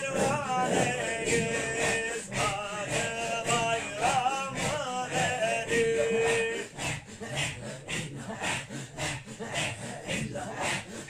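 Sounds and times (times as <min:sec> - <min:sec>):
men chanting rhythmically: 0:00.0 - 0:11.0.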